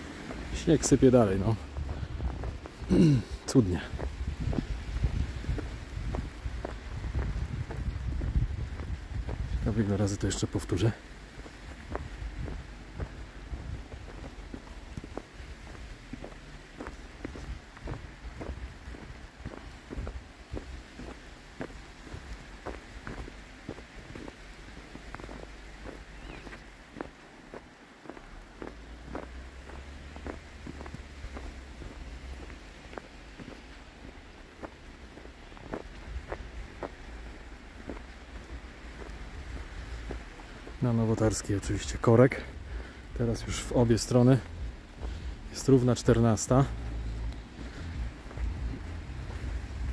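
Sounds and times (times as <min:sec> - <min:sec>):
footsteps in deep snow: 0:00.0 - 0:49.9.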